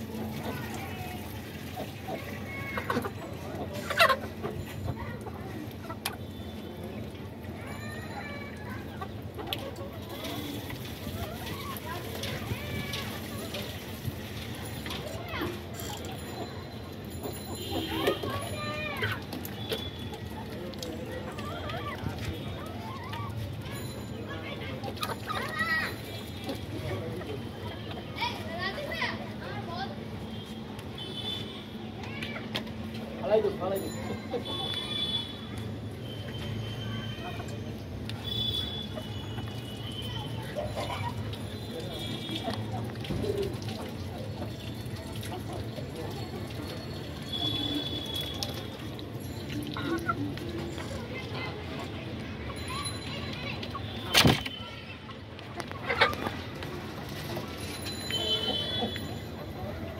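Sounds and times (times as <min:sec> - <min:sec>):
chickens clucking: 0:00.3 - 0:06.2, 0:55.4 - 0:57.3.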